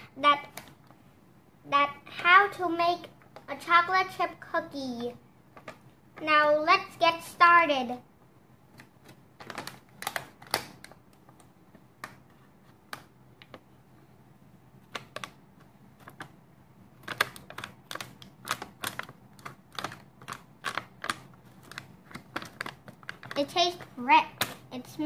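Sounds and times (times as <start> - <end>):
plastic pouch crinkling: 17.0 - 24.7.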